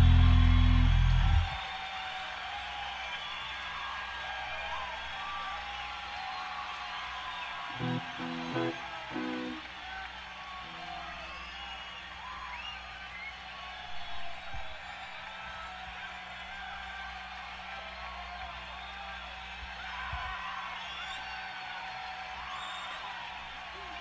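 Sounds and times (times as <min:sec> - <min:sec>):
amplifier hum: 0:00.0 - 0:01.6, 0:07.7 - 0:09.6
crowd cheering and whistling: 0:00.0 - 0:24.0.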